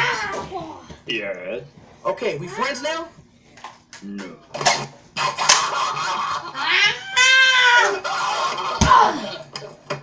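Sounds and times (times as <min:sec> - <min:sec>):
meow-like cry: 0:06.6 - 0:08.0.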